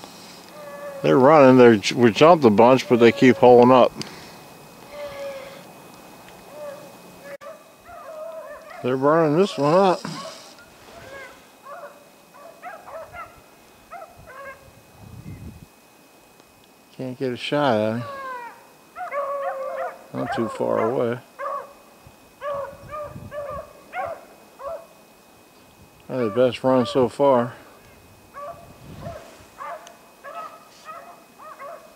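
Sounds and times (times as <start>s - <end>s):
pack of dogs baying: 0.5s - 3.8s, 6.4s - 14.6s, 18.0s - 21.8s, 22.4s - 25.0s, 26.1s - 27.1s, 28.3s - 31.9s.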